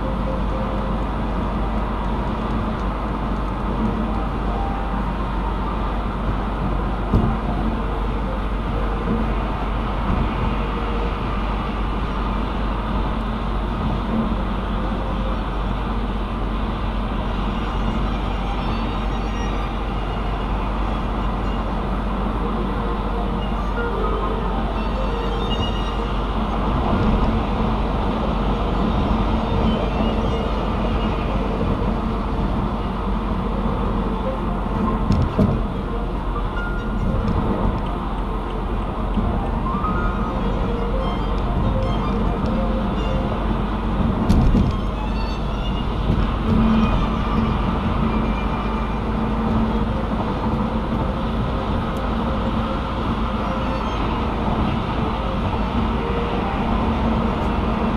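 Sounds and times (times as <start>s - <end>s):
road and tyre noise: 0.0s - 57.9s.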